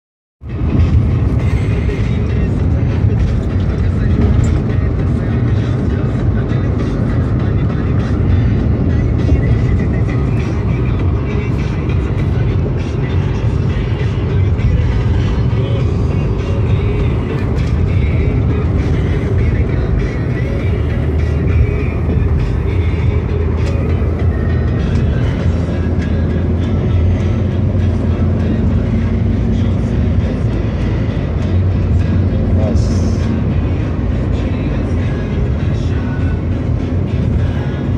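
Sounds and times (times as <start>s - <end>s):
car engine and tyre rumble: 0.4s - 37.9s
music playing in car: 0.4s - 37.9s.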